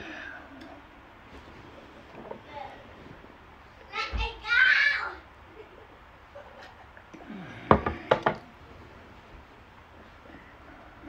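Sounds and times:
girl exclaiming: 3.9s - 5.3s.

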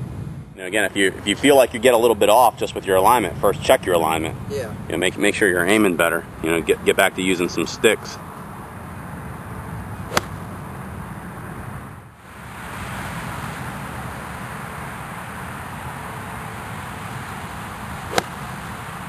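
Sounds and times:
outdoor background noise: 0.0s - 19.0s
golf club striking ball: 10.1s - 10.4s, 18.1s - 18.6s.

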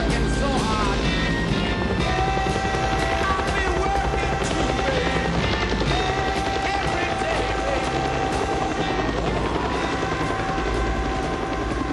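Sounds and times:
film soundtrack music: 0.0s - 11.9s
helicopter running: 0.0s - 11.9s
indistinct voices: 0.0s - 11.9s.

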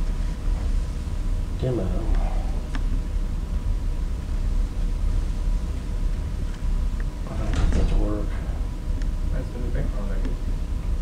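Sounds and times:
faint steady hum: 0.0s - 11.0s
low rumble of room noise: 0.0s - 11.0s
voice: 1.6s - 2.5s, 7.3s - 8.7s, 9.3s - 10.4s.

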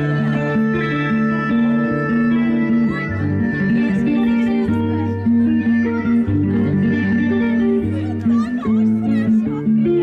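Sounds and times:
bass line: 0.0s - 10.0s
loud music with guitar: 0.0s - 10.0s.

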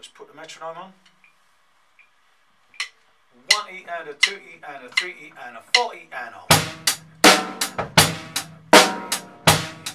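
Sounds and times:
metronome ticking: 2.8s - 8.6s.

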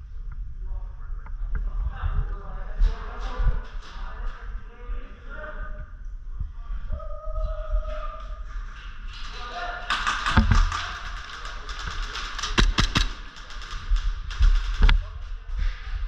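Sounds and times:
airsoft gunfire clicks: 10.0s - 14.9s.

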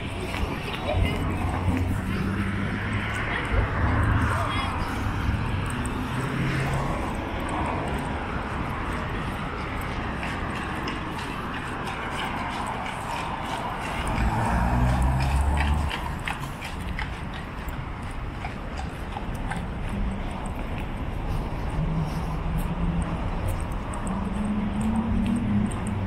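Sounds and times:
city traffic hiss: 0.0s - 18.3s, 19.9s - 26.0s
horse hooves clip-clopping: 0.0s - 26.0s
car passing close: 1.1s - 18.9s.

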